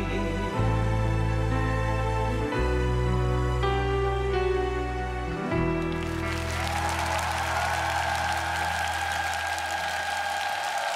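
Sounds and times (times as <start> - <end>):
audience applauding: 5.8 - 10.9.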